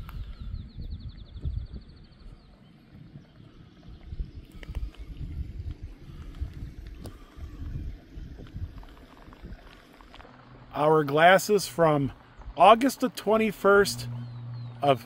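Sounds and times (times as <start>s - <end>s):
wind buffeting microphone: 0.0s - 12.9s
bird trilling: 13.8s - 15.0s.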